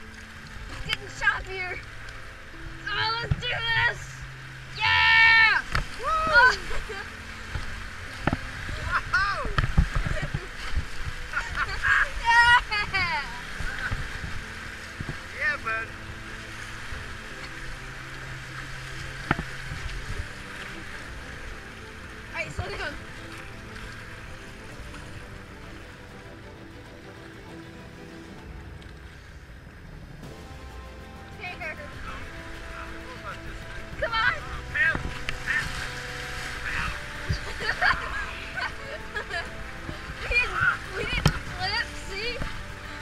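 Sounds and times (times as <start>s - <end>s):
river rapids rushing and splashing: 0.0s - 43.0s.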